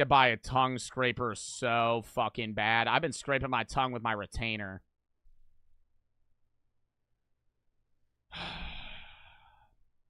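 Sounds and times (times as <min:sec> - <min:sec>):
man sighing heavily: 0:08.3 - 0:09.6.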